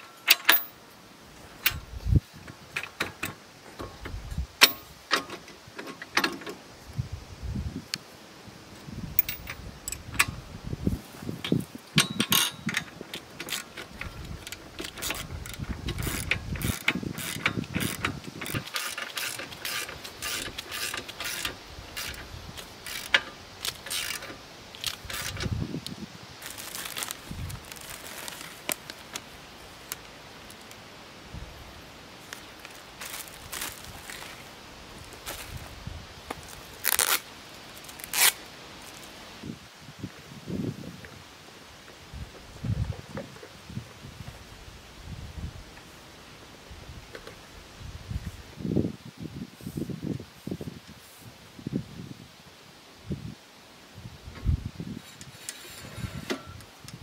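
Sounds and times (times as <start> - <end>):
metallic clinks of tools: 9.2 - 10.0, 12.0 - 12.9
ratchet wrench clicking: 12.0 - 25.5.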